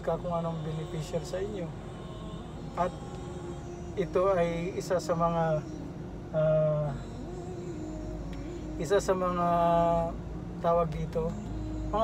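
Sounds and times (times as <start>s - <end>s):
car engine running inside cabin: 0.0s - 12.0s.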